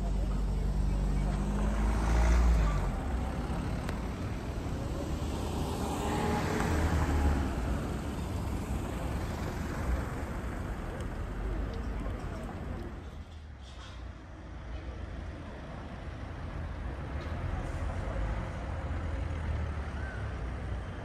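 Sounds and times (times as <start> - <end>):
vehicle passing: 0.0 - 13.0.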